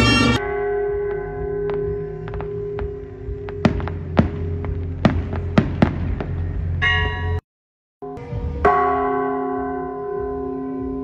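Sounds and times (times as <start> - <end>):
church bell ringing: 0.0 - 5.0, 6.8 - 7.4, 8.0 - 11.0
firework bangs: 3.6 - 6.6.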